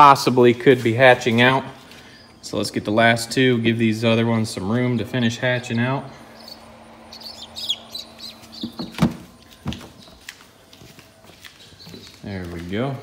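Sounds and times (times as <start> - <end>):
chicks peeping: 6.3 - 10.4.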